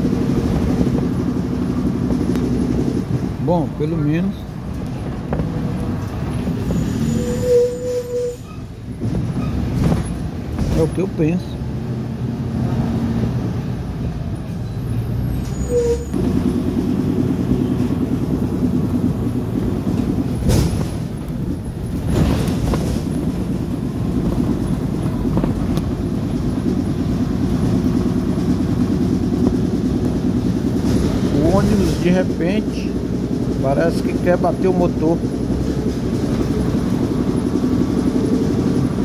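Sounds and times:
bus engine droning and rattling: 0.0 - 39.0.

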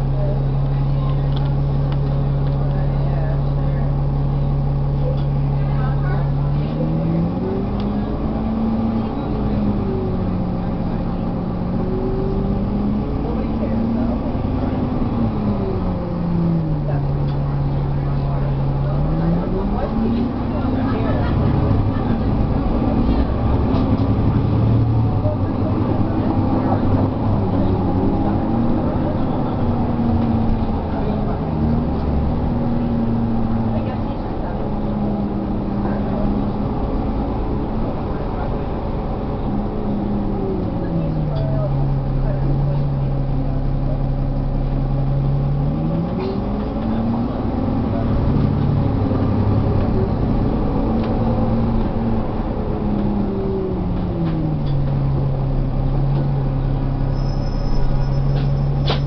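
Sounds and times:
bus diesel engine running: 0.0 - 59.0.

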